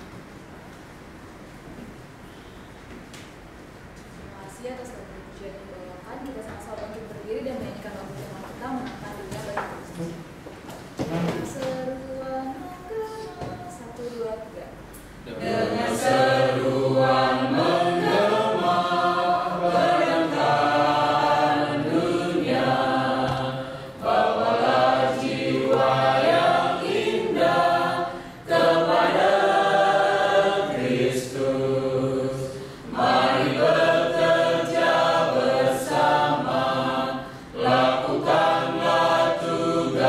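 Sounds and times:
congregation singing a hymn: 15.2s - 40.0s.

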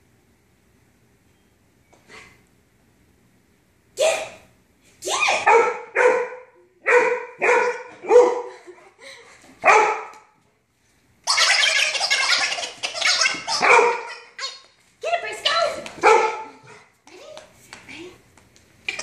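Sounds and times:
dog barking: 5.4s - 8.5s, 9.6s - 10.3s, 13.5s - 14.3s, 16.0s - 16.9s.

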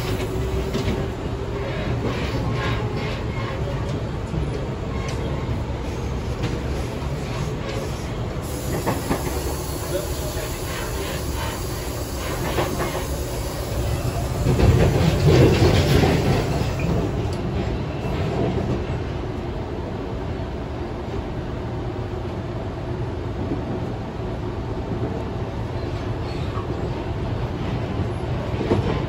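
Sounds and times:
train wheels rumbling on rails: 0.0s - 29.0s.

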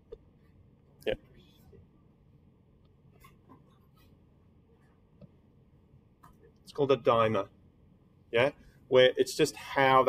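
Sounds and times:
stylus tapping and scratching on screen: 0.0s - 2.1s, 2.7s - 6.7s.

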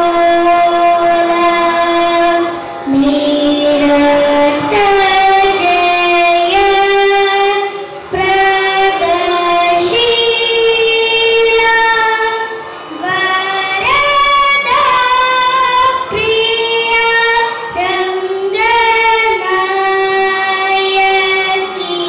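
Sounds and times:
girl singing into microphone: 0.0s - 22.0s.

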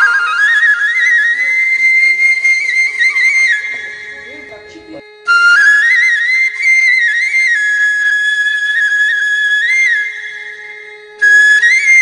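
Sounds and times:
flute music: 0.0s - 12.0s.

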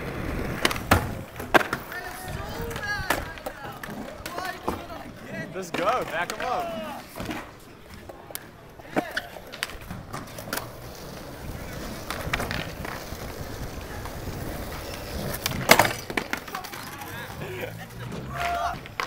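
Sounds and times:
skateboard wheels rolling on concrete: 0.0s - 19.0s
skateboards clacking on ground: 0.0s - 19.0s.

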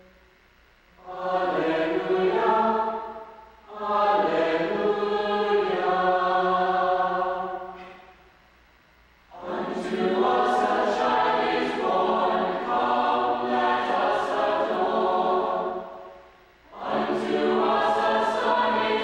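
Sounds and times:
mixed choir singing: 1.0s - 8.1s, 9.3s - 19.0s.

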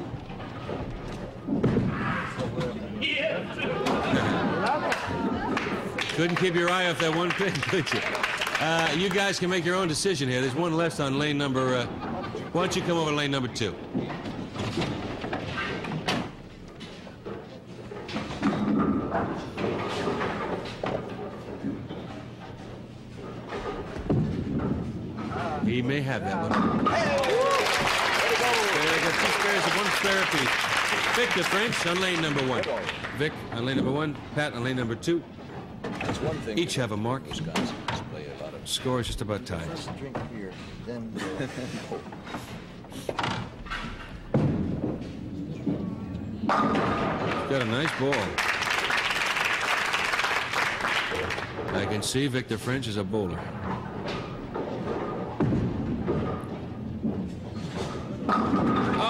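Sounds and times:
bowling pins clattering: 11.0s - 40.8s, 42.0s - 59.0s.

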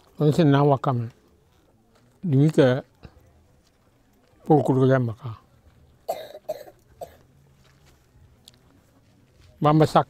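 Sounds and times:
elderly man coughing: 6.1s - 7.2s.

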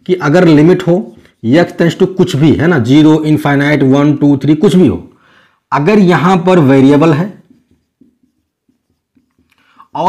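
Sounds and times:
marker writing on whiteboard: 0.0s - 2.6s, 6.0s - 10.0s.

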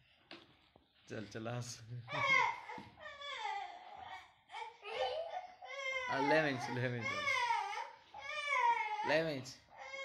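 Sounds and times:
small child crying: 2.1s - 9.2s.

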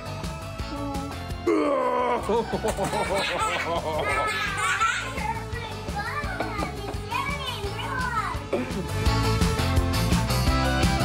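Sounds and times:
light background music: 0.0s - 11.0s
young boy laughing: 1.8s - 5.6s.

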